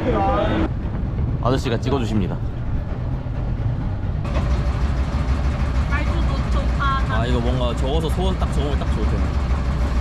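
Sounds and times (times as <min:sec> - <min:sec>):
boat engine rumbling: 0:00.0 - 0:10.0.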